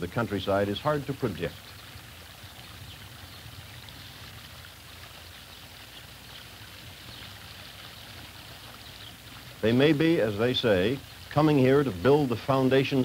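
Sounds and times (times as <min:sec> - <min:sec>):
faint steady hiss: 0:00.0 - 0:13.0.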